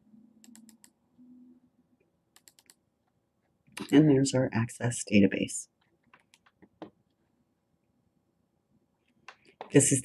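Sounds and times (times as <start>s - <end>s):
faint low hum: 0.0s - 10.0s
computer mouse clicks: 0.4s - 1.0s, 2.3s - 2.8s, 5.8s - 7.0s.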